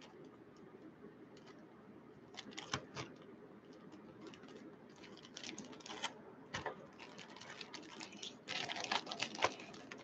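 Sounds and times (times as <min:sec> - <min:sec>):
plastic and foil crinkling: 0:02.3 - 0:10.0.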